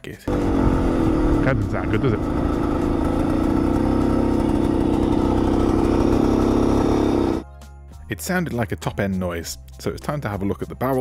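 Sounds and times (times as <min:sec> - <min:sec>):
motorcycle engine running: 0:00.3 - 0:07.5.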